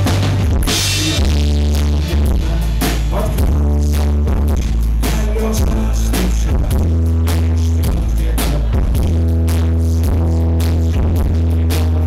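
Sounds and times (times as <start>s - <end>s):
drum kit: 0.0s - 12.0s
heavy bass: 0.0s - 12.0s.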